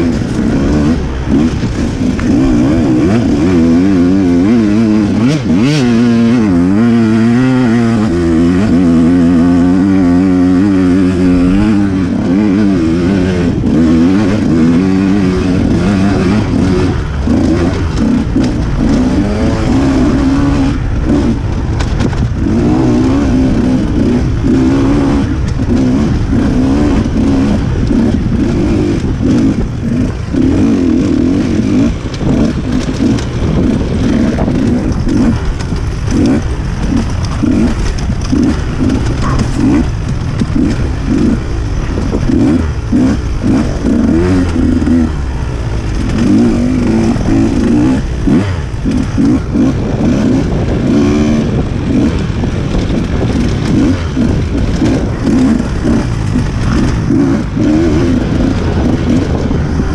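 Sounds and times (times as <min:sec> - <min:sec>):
dirt bike engine revving: 0:00.0 - 0:59.9.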